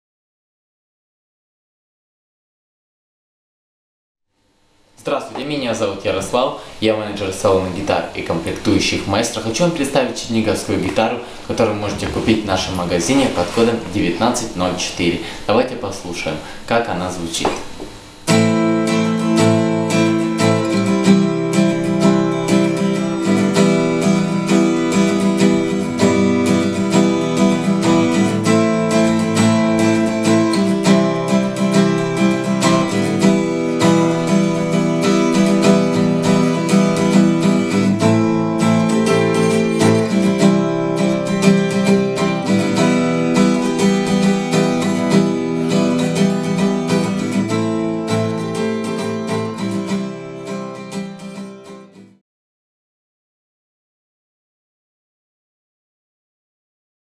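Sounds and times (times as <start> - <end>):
acoustic guitar strumming chords: 5.0 - 52.2.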